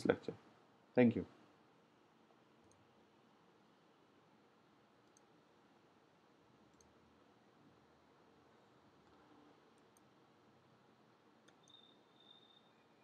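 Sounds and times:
faint high ticks: 11.4s - 12.4s.

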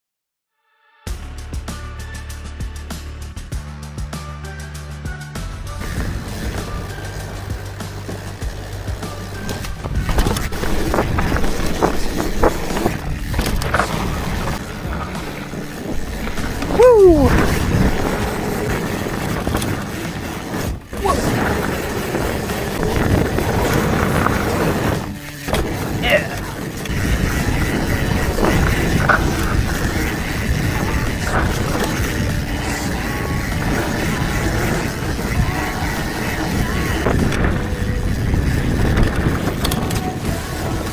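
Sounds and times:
background music: 0.7s - 40.9s
bike rattling over dirt trail: 5.6s - 40.9s
wind rushing: 9.4s - 40.9s.

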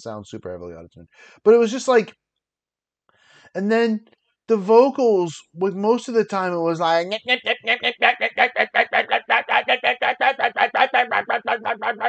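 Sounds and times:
person mimicking rapped vocal: 7.0s - 12.0s.

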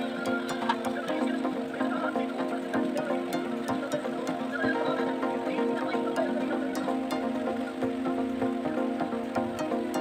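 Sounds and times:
light ticking beat: 0.0s - 10.0s
sustained synth chords: 0.0s - 10.0s.

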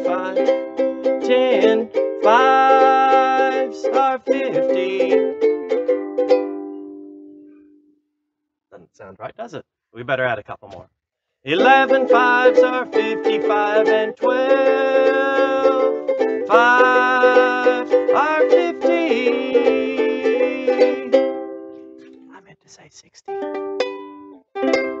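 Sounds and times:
man singing: 0.0s - 5.4s, 11.5s - 21.2s
ukulele strumming chords: 0.0s - 7.8s, 11.5s - 22.3s, 23.3s - 25.0s.

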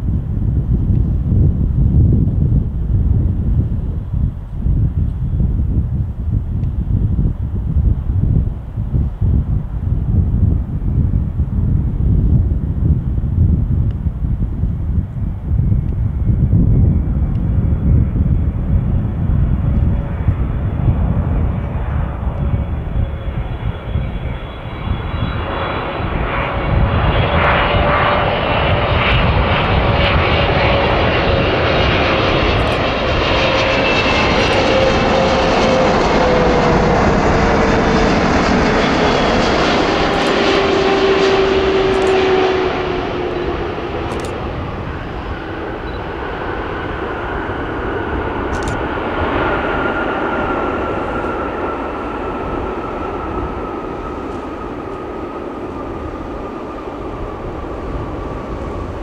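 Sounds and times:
jet engine whine: 0.0s - 59.0s
jet engines roaring: 0.0s - 59.0s.

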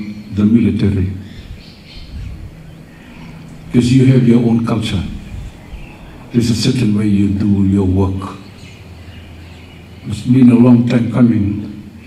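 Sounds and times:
man speaking into microphone: 0.0s - 1.3s, 3.7s - 5.5s, 6.3s - 8.5s, 10.0s - 11.8s
faint outdoor background sound: 0.0s - 12.0s.

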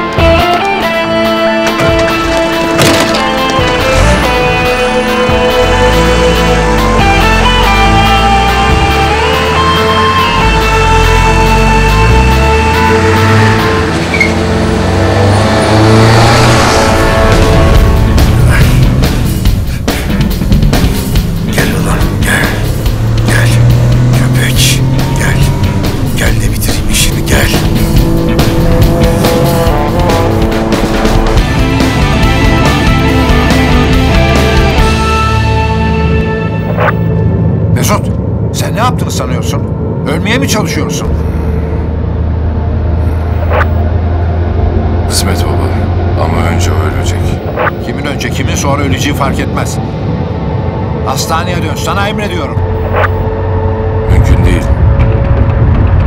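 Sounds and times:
car engine accelerating hard: 3.3s - 37.6s.

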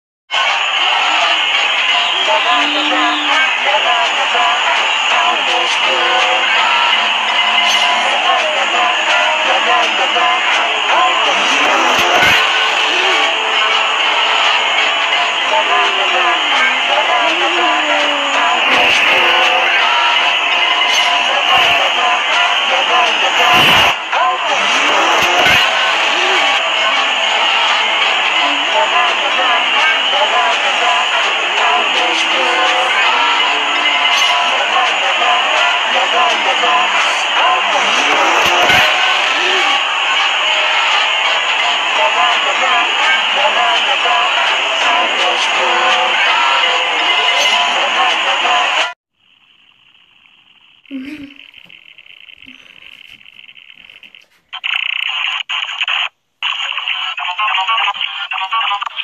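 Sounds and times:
warped voices: 0.3s - 48.9s, 50.9s - 51.6s, 52.4s - 53.2s
distorted music: 0.3s - 49.0s.

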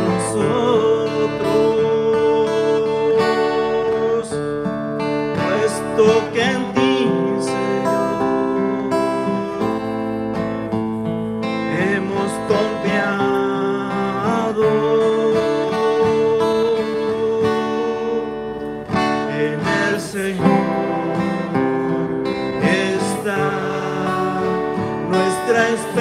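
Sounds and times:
man singing: 0.0s - 4.6s, 5.2s - 10.2s, 11.5s - 26.0s
strummed acoustic guitar: 0.0s - 26.0s.

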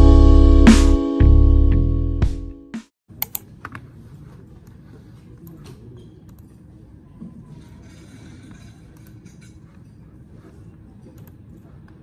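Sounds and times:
background music: 0.0s - 2.9s.

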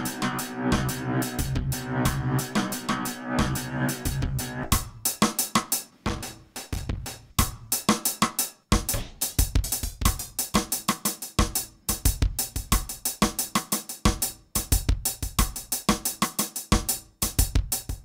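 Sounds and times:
drum machine beat with echoes: 0.0s - 18.0s.

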